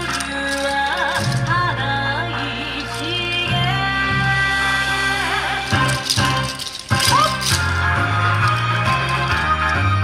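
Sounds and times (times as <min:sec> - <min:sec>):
wooden clappers clacking: 0:00.0 - 0:01.9, 0:02.6 - 0:03.8, 0:05.4 - 0:10.0.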